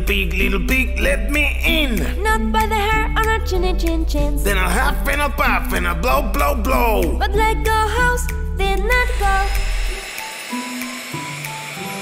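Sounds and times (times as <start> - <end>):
children's song instrumental: 0.0 - 12.0
leaf blower blowing: 9.0 - 12.0.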